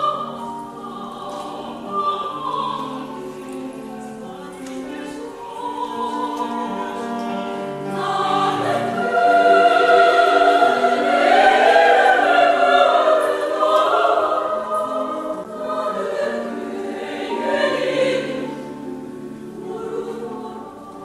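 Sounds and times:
women's choir singing: 0:00.0 - 0:21.0.

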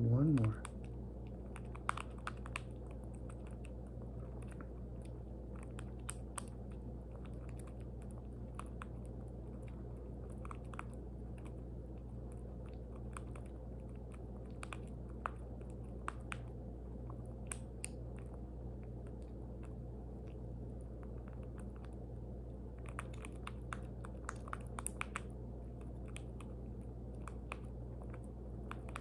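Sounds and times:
steady low hum: 0:00.0 - 0:29.0.

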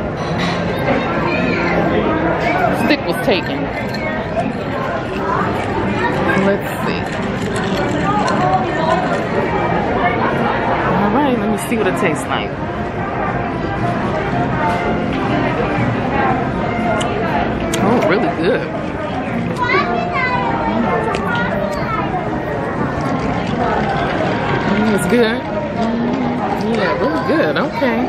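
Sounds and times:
background chatter of people: 0:00.0 - 0:28.0
people talking: 0:00.8 - 0:12.6, 0:17.0 - 0:18.8, 0:19.4 - 0:28.0.

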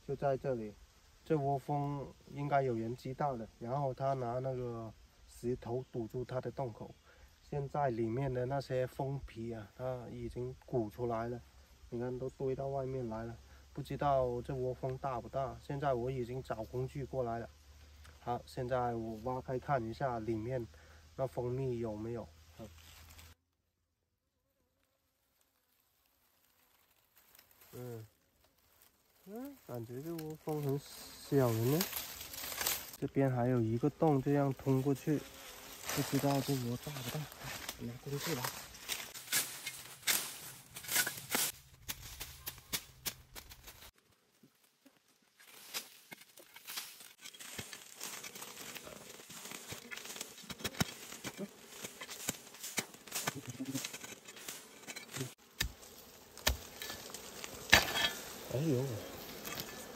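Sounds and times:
background noise: 0:00.0 - 0:59.9
dry grass and leaves crackling: 0:10.5 - 0:23.4, 0:24.7 - 0:59.9
hoe chopping and scraping soil: 0:31.3 - 0:33.0, 0:35.2 - 0:44.0, 0:45.4 - 0:59.9
honeybee buzzing: 0:33.7 - 0:39.2, 0:47.6 - 0:59.9.

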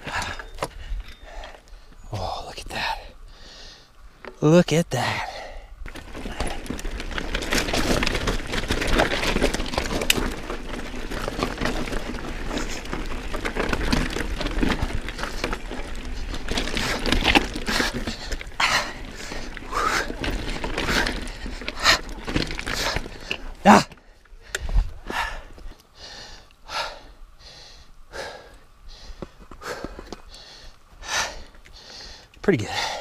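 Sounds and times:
bike rattling: 0:00.0 - 0:02.0, 0:05.0 - 0:27.6
bike tyres crunching over stones: 0:00.0 - 0:33.0
wind rumble on microphone: 0:24.5 - 0:25.7.

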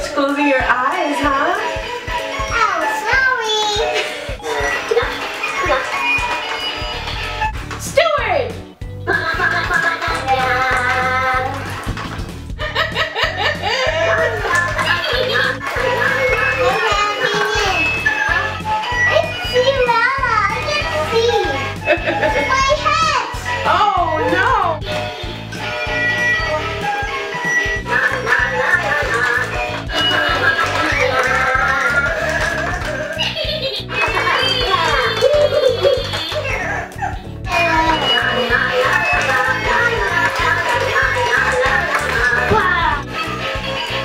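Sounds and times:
bouncy electronic toy music: 0:04.3 - 0:07.6, 0:12.8 - 0:44.0.

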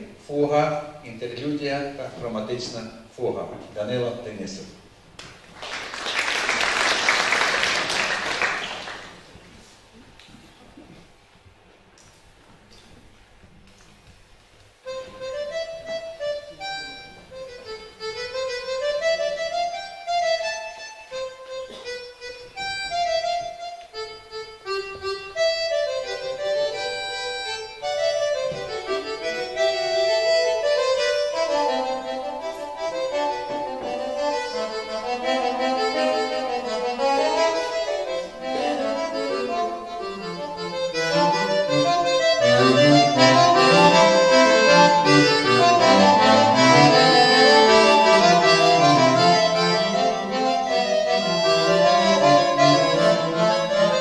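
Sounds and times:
accordion playing polyphonic piece: 0:06.5 - 0:09.7, 0:14.8 - 0:54.0.

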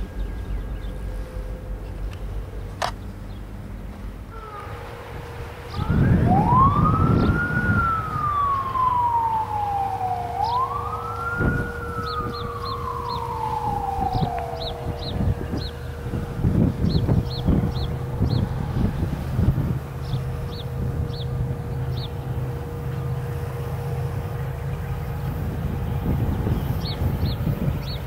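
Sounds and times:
steady tone: 0:00.0 - 0:26.0
emergency vehicle siren wailing: 0:04.3 - 0:28.0.

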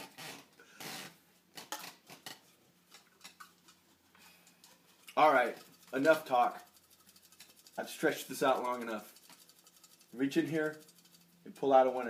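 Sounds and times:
paper slips rustling in tumbler: 0:01.6 - 0:12.0.

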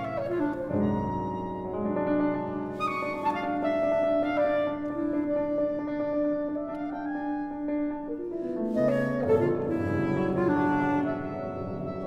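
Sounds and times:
chamber music clarinet cello piano: 0:00.0 - 0:12.0.

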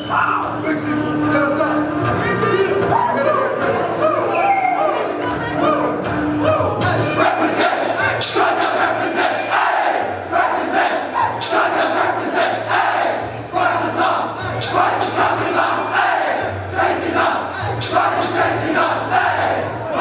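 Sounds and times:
teenagers singing and shouting: 0:01.5 - 0:20.0.

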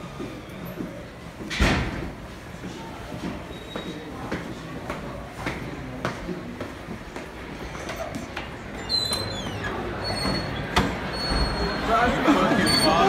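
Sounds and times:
footsteps on tile floor: 0:02.5 - 0:09.4
sneakers squeaking on floor: 0:03.3 - 0:04.2, 0:07.7 - 0:11.9.

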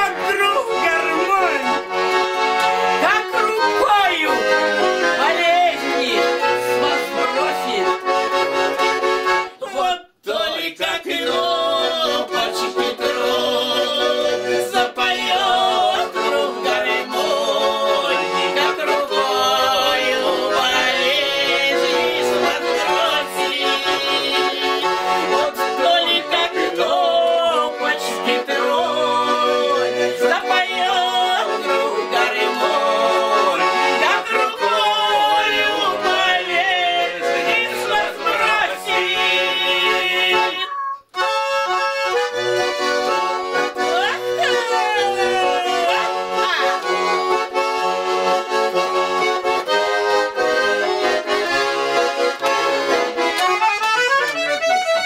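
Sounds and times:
accordion playing folk tune: 0:00.0 - 0:55.0.

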